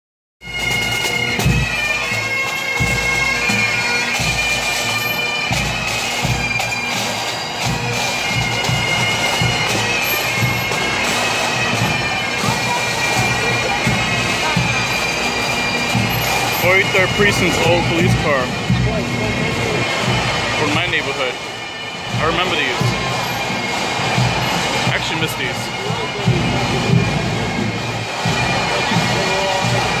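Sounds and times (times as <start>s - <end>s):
bagpipes playing: 0.4s - 30.0s
low drum beats: 5.5s - 30.0s.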